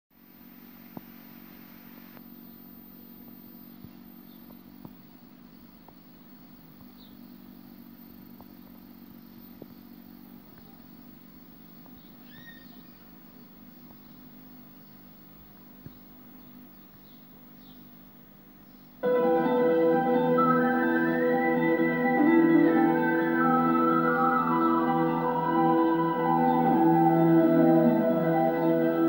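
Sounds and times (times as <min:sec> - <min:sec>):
television buzz with hiss: 0:00.2 - 0:29.0
faint high chirps: 0:00.3 - 0:29.0.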